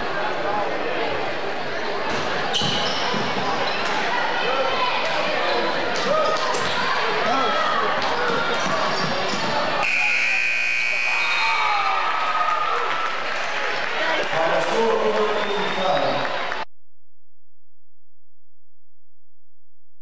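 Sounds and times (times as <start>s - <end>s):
crowd voices and shouts: 0.0s - 16.7s
sneakers squeaking: 2.1s - 4.2s, 5.0s - 9.8s.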